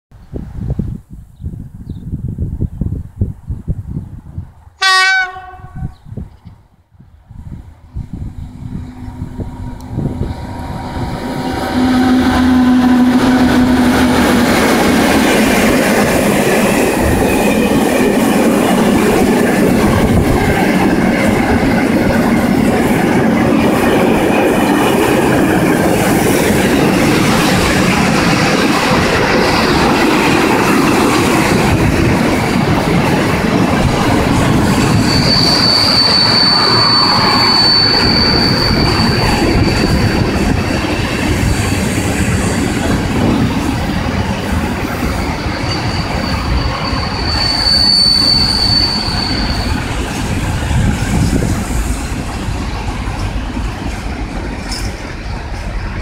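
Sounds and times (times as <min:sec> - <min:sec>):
locomotive low hum: 0:07.3 - 0:16.2
train wheels rumbling on rails: 0:07.3 - 0:56.0
high wheel squeal: 0:34.4 - 0:41.8, 0:45.0 - 0:51.2.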